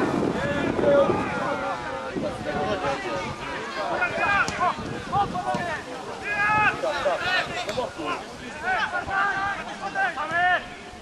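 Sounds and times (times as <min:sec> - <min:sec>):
voices shouting: 0:00.0 - 0:11.0.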